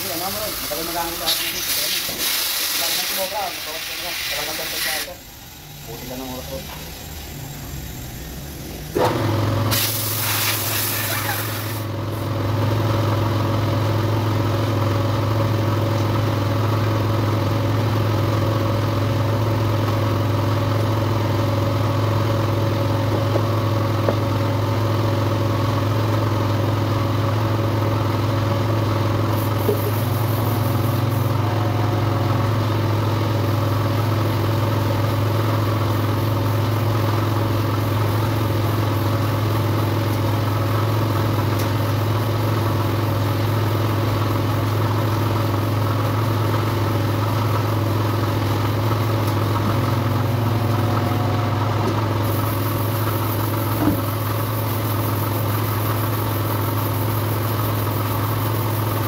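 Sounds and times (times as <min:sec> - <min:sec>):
low machine drone: 0:48.0 - 0:52.8.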